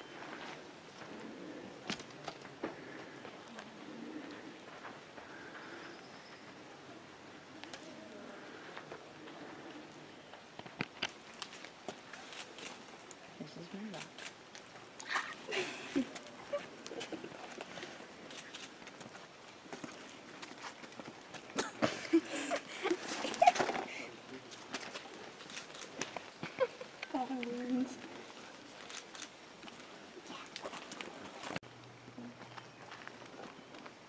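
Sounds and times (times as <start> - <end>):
footsteps on stone and gravel: 14.0 - 23.9, 32.3 - 34.0.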